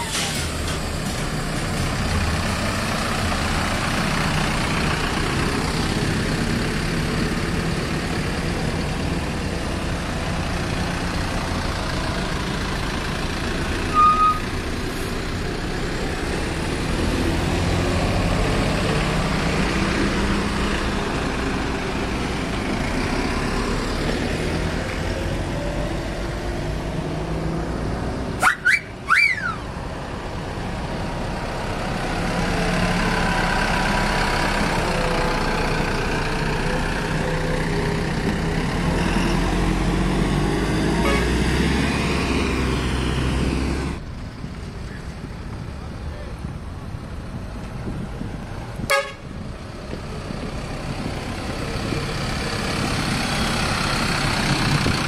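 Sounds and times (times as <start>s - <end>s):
diesel bus engines rumbling: 0.0s - 55.0s.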